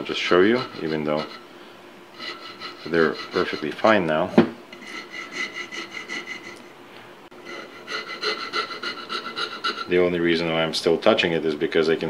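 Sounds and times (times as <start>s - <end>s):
file rasping wood: 0.3s - 1.5s, 2.2s - 4.0s, 4.8s - 6.6s, 7.4s - 10.0s.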